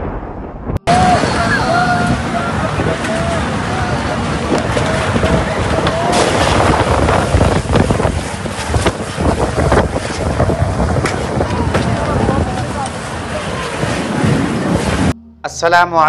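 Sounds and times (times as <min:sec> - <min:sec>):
storm wind and rain on microphone: 0:00.0 - 0:15.2
voices calling out: 0:00.9 - 0:07.5.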